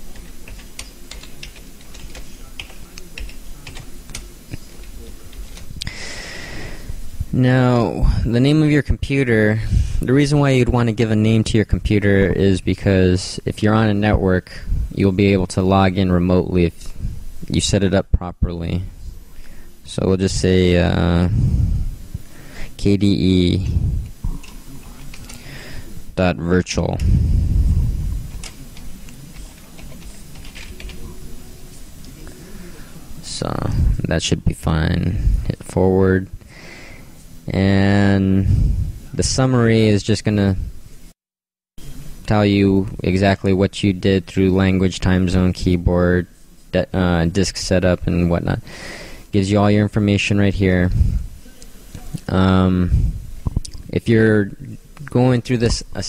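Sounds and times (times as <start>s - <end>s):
computer keyboard typing: 0.0s - 5.7s, 28.3s - 31.2s
low rumble: 27.0s - 28.4s.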